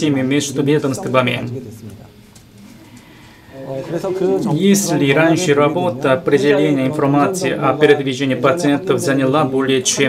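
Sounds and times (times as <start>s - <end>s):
man speaking: 0.0s - 2.2s, 3.5s - 10.0s.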